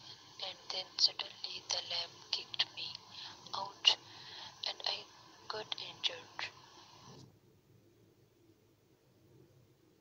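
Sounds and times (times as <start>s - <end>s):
recorded voice message playback: 0.0s - 6.6s.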